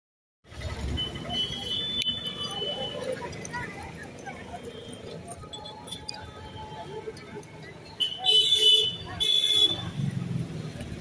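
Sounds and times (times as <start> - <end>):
faint street background: 0.4 - 11.0
vehicle horn honking: 0.9 - 3.0, 8.0 - 9.9.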